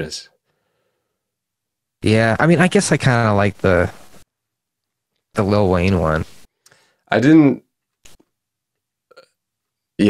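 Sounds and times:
person hiccuping: 9.1 - 9.4.

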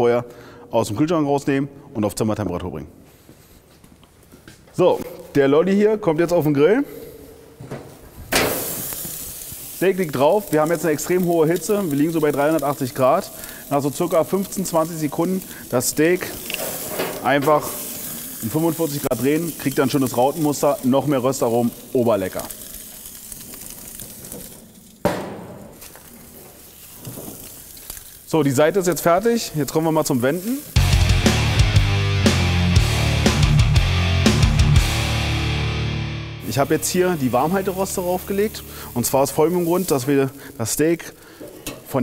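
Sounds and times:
metal grill lid clanking shut: 8.3 - 8.8, 16.5 - 17.5
steak sizzling on a grill: 8.4 - 25.1, 25.8 - 31.7, 36.4 - 41.4.

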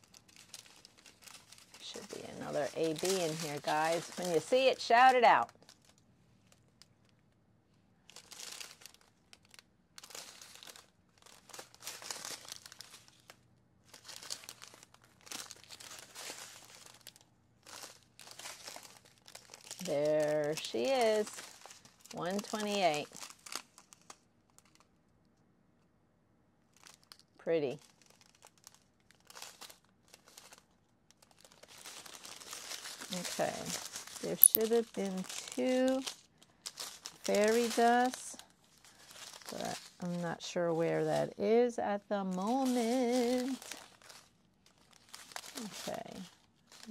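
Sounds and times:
plastic bags crinkling: 0.0 - 7.4, 8.0 - 24.9, 26.7 - 46.9.

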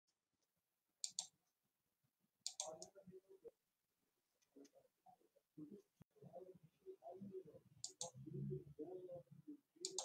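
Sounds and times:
faint voice-like sound: 4.4 - 10.0.

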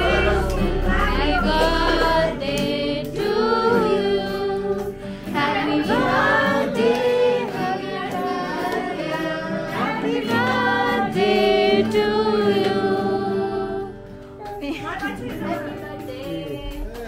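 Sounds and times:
hands clapping along: 0.0 - 3.9, 4.8 - 12.9, 13.9 - 17.0
group of voices singing: 0.0 - 14.2.

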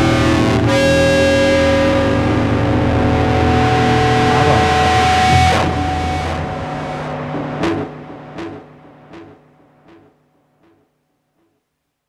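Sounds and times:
distorted electric guitar chord: 0.0 - 9.4.

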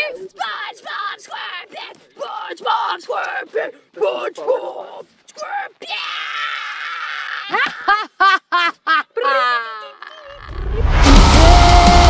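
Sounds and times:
woman screaming high-pitched: 9.2 - 10.5.

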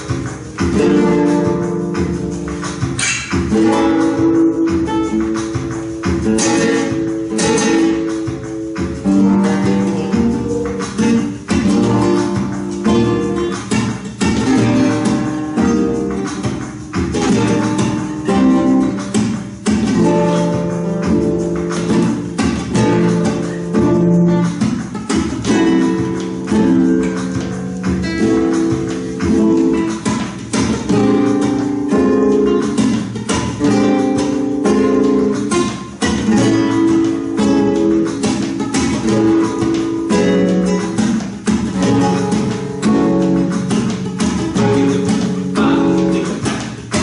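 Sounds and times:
flamenco guitars strumming: 0.0 - 47.0.

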